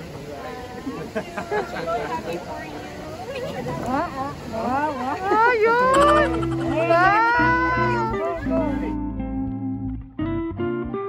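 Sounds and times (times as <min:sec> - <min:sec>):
woman squealing excitedly: 0:05.3 - 0:08.9.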